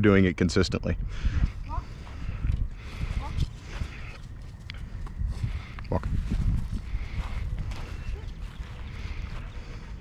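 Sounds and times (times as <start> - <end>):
footsteps on grass and dry leaves: 2.8 - 10.0.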